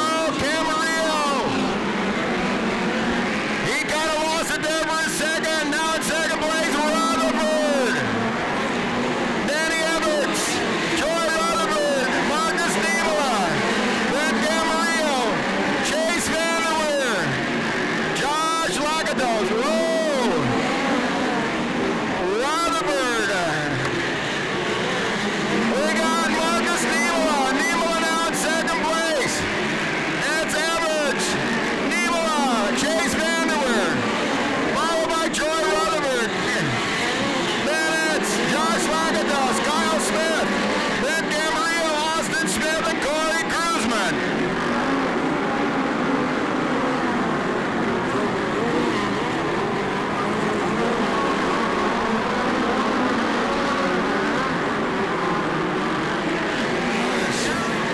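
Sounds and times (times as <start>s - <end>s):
race car engines revving: 0.0s - 57.9s.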